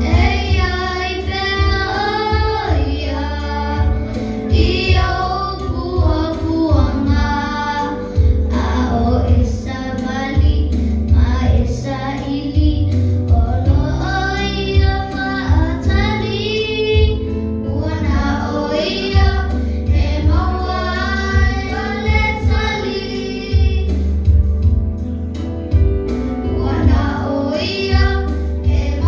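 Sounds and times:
children singing into microphones: 0.0s - 24.4s, 26.4s - 29.0s
music with heavy bass line: 19.2s - 29.0s.

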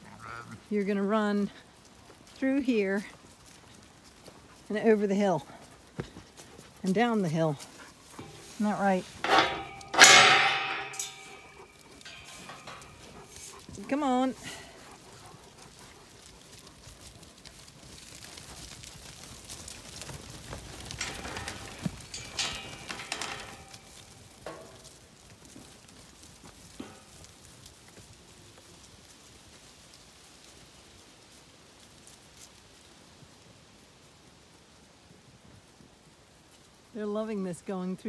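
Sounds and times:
hooves pattering through leaves: 0.0s - 9.2s, 11.1s - 23.0s, 23.8s - 38.0s.

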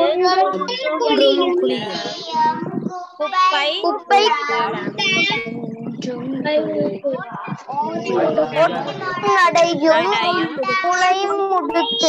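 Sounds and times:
child singing: 0.0s - 12.0s.

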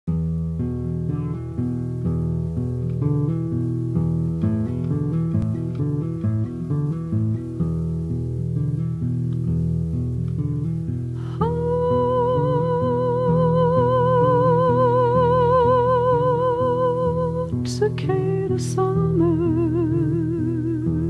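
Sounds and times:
guitar plucking notes: 0.1s - 21.0s.

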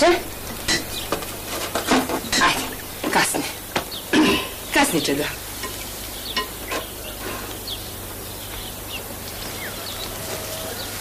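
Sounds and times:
low hum: 0.0s - 9.3s
steady hiss: 0.0s - 11.0s.

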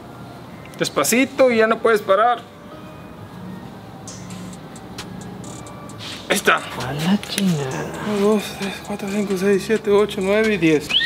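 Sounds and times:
wrench clicks and creaks: 5.4s - 6.0s, 8.7s - 11.0s.

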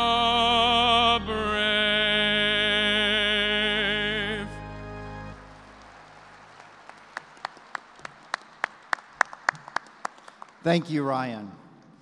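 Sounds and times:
faint scattered clapping: 5.4s - 11.0s
sharp hand claps: 5.7s - 10.7s.

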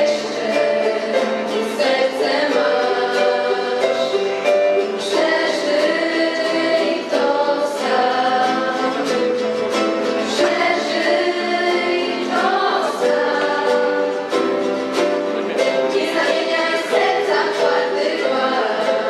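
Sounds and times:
girls singing together: 0.0s - 15.0s, 15.8s - 19.0s
strummed acoustic guitars: 0.0s - 19.0s.

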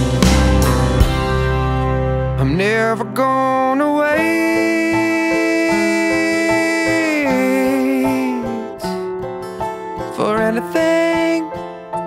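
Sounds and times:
guitar song: 0.0s - 12.0s.

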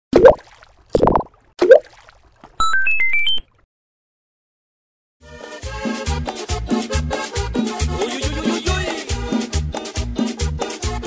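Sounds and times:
cartoon-like pops: 0.1s - 1.9s
electronic chime tones: 2.6s - 3.4s.

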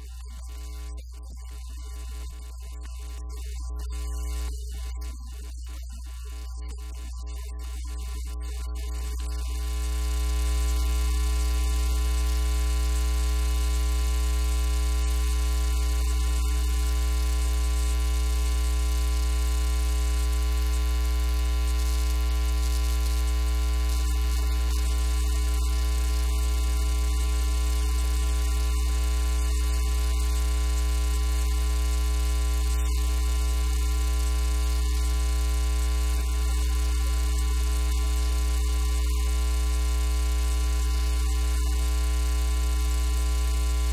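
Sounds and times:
electrical mains hum: 0.0s - 1.0s, 6.2s - 43.9s.

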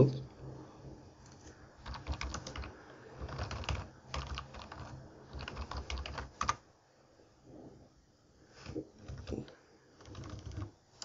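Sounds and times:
typing on computer keyboard: 1.8s - 6.6s, 8.6s - 11.0s.

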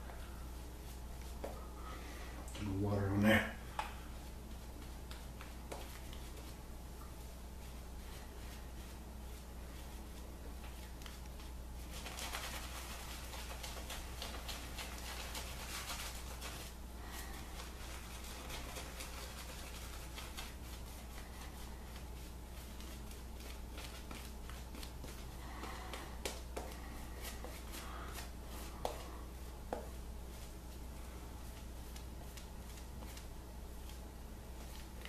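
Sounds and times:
steady low hum: 0.0s - 35.0s
shaving brush swishing lather: 4.1s - 35.0s.

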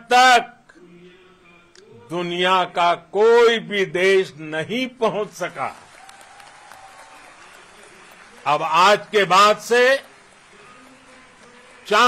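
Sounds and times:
faint crowd applause and cheering: 5.3s - 12.0s.

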